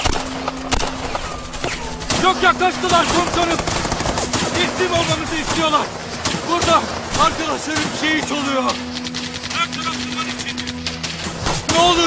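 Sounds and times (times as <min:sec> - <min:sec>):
gunshots: 0:00.0 - 0:12.0.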